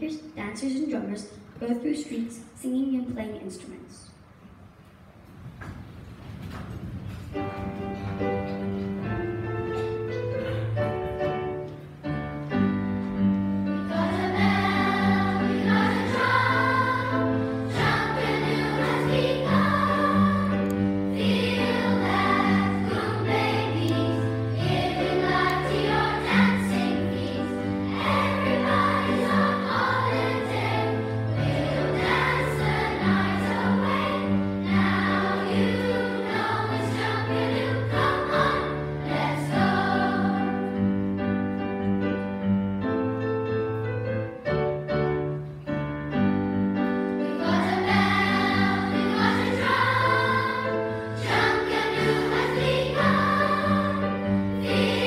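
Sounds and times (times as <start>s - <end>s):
piano accompaniment: 6.7s - 55.0s
children's choir singing: 13.6s - 41.4s, 47.1s - 55.0s.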